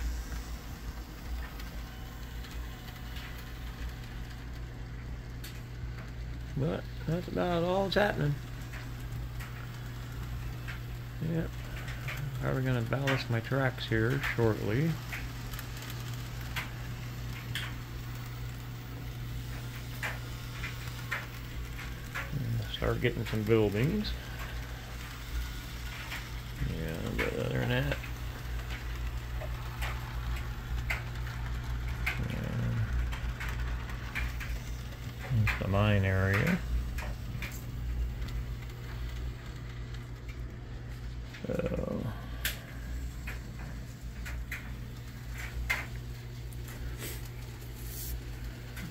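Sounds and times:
model train hum: 0.0 - 48.9
wheels clicking on track: 0.0 - 48.9
low voice murmurs: 32.1 - 32.9, 41.4 - 42.6.

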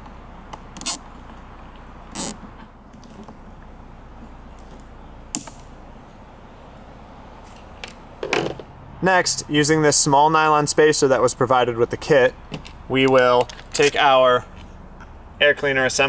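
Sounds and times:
faint steady background noise: 0.0 - 16.0
zip tie click: 0.8 - 1.0, 2.1 - 2.4
zip tie ratcheting: 0.8 - 1.0, 2.1 - 2.4.

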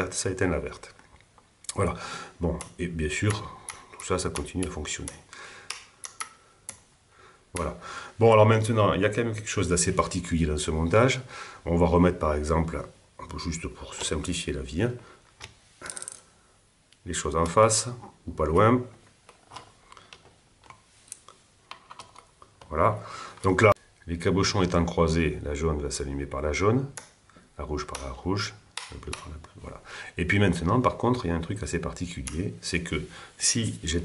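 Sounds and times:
toggle switches clicking: 27.8 - 29.5.

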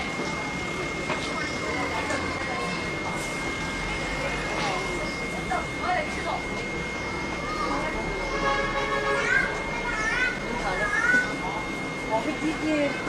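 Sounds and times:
distant voices of vendors and shoppers: 0.0 - 13.0.

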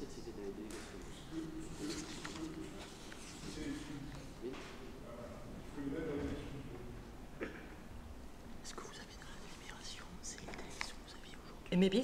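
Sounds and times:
faint whispering: 8.6 - 11.7.

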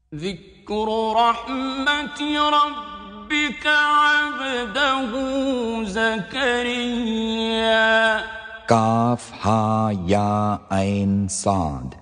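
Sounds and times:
man chanting melodically: 0.1 - 12.0.

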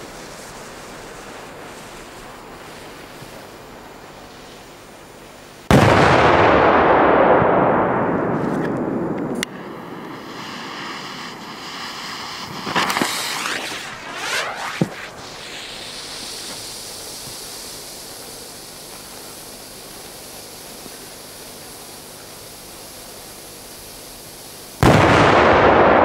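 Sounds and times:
firecracker blast: 5.6 - 19.1, 24.8 - 26.0
sharp firecracker cracks: 5.7 - 16.7, 24.8 - 26.0
loud rushing noise: 8.3 - 16.2.

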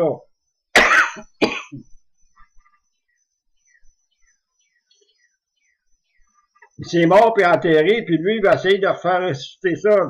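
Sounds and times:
man coughing: 0.8 - 1.9.

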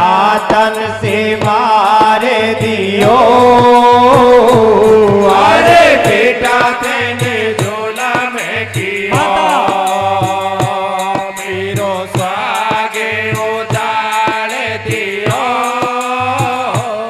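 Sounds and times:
harmonium chords: 0.0 - 16.1
percussion beat: 0.0 - 17.0
voices singing: 0.0 - 17.0.

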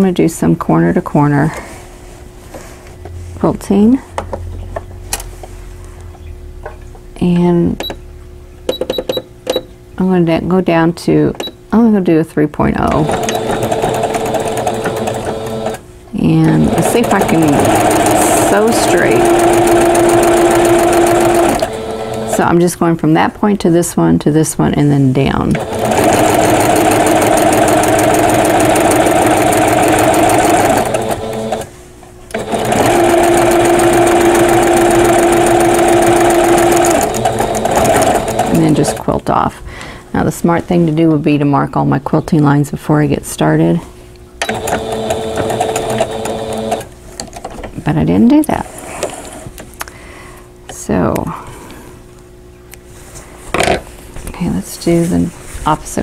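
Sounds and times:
sewing machine running: 12.9 - 15.8, 16.5 - 22.5, 25.5 - 31.7, 32.3 - 39.1, 44.5 - 46.9.

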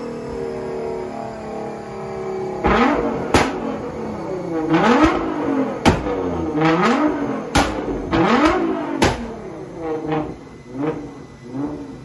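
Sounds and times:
car engine revving: 0.0 - 12.0
loud exhaust bangs: 2.4 - 12.0.

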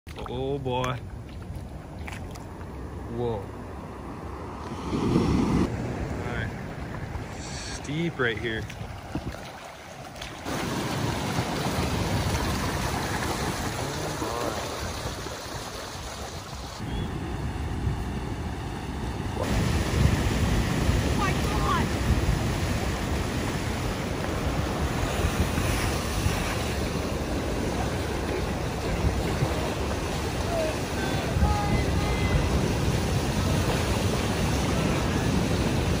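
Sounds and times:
river water rushing: 7.2 - 16.9, 18.4 - 36.0
wind buffeting microphone: 8.0 - 36.0.

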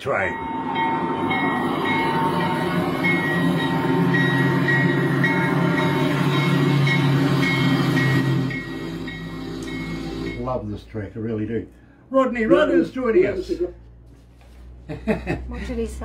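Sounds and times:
freight train rumble: 0.0 - 13.8
high whistle-like tones: 0.1 - 10.6.

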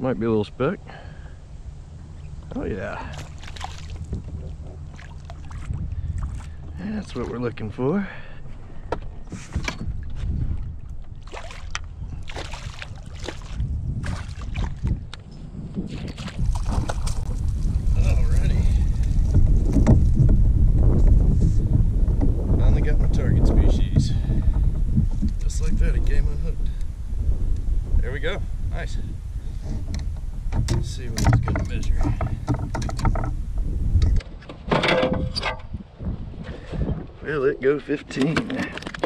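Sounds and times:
wind on microphone: 1.5 - 39.0
knocks and splashes: 3.0 - 7.4, 9.4 - 15.1, 15.8 - 18.4, 29.8 - 33.4
gear knocking on plastic kayak: 19.0 - 21.2, 29.7 - 33.4.

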